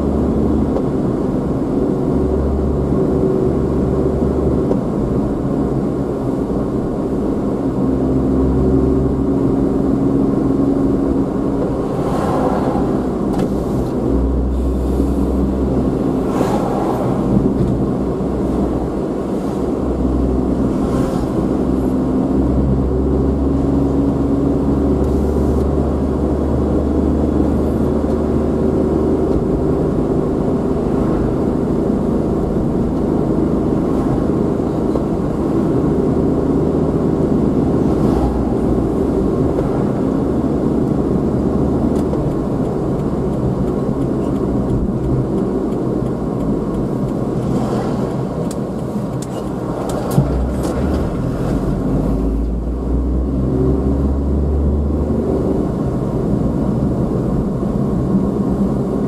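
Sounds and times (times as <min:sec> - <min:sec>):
car engine and road noise: 0:00.0 - 0:59.0
low rumble: 0:10.2 - 0:23.5.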